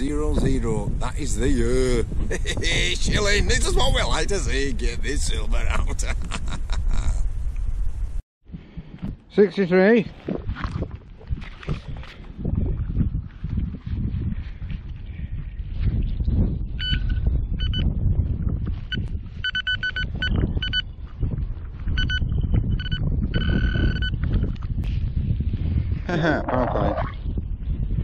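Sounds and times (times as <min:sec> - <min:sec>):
low rumble: 0:00.0 - 0:08.9
metal detector beeping: 0:16.8 - 0:17.9, 0:18.8 - 0:21.0, 0:22.0 - 0:24.3.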